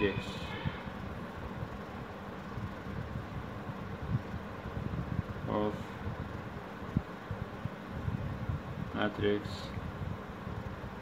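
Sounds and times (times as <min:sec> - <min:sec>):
fan or air conditioner hum: 0:00.0 - 0:11.0.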